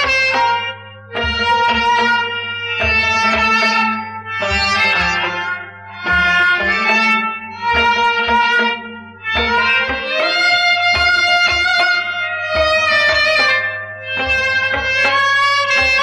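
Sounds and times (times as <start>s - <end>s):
folk ensemble melody: 0.0s - 16.0s
drum beating: 1.2s - 2.1s, 6.0s - 13.6s.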